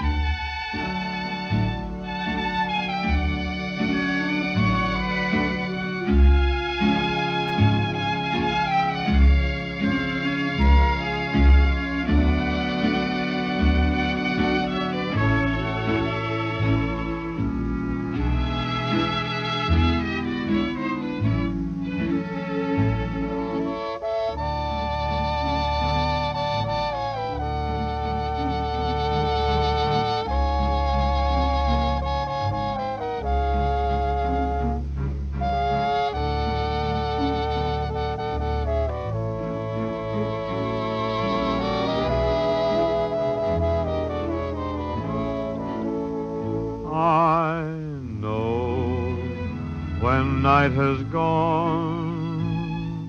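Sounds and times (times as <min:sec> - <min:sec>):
dance orchestra playing: 0:00.0 - 0:46.8
steady bass: 0:00.0 - 0:53.0.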